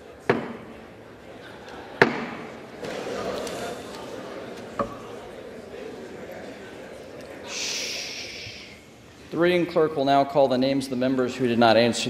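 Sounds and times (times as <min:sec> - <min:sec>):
murmur of crowd: 0:00.0 - 0:12.0
breathy hiss near microphone: 0:05.7 - 0:09.6.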